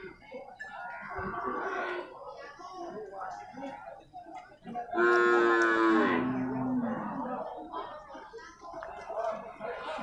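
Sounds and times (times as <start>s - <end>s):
water buffalo mooing: 5.0s - 7.2s.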